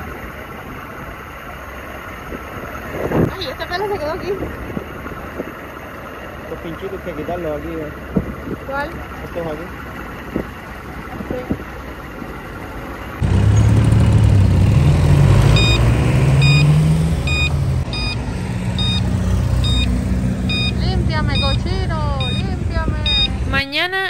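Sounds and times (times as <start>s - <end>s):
vehicle engine accelerating: 0.0s - 23.6s
wind noise: 2.2s - 5.9s, 8.0s - 8.8s, 13.2s - 23.8s.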